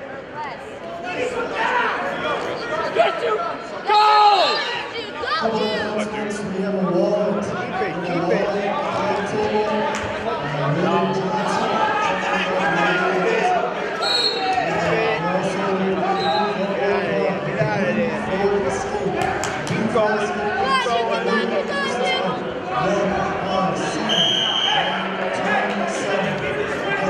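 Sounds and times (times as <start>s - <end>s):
people shouting and talking: 0.0s - 27.0s.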